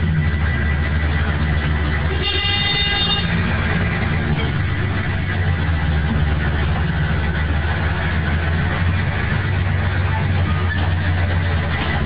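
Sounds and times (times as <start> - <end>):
diesel bus engine drone: 0.0 - 12.0.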